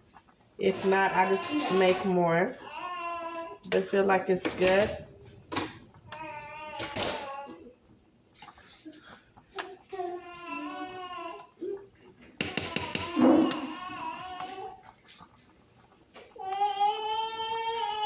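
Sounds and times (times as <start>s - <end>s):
baby fussing and crying: 2.6s - 3.6s, 9.7s - 11.9s, 12.5s - 14.9s.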